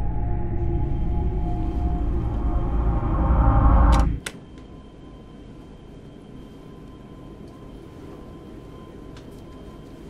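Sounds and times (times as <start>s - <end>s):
faint steady hum: 0.0s - 10.0s
horror film score drone: 0.0s - 10.0s.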